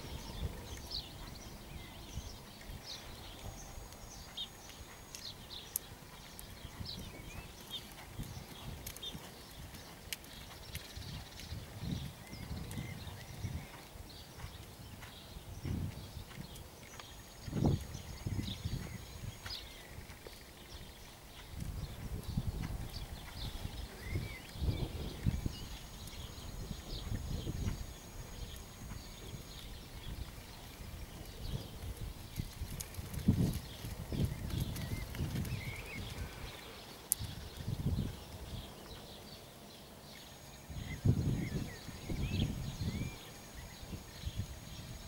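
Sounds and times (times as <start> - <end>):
small birds chirping: 0.0 - 45.0
horse hoofbeats on sand: 4.0 - 37.4.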